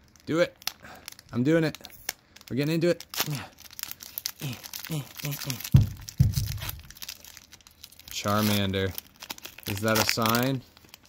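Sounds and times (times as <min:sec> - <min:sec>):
foil wrapper crinkling and tearing: 0:00.0 - 0:11.0
low bumps: 0:05.6 - 0:07.0.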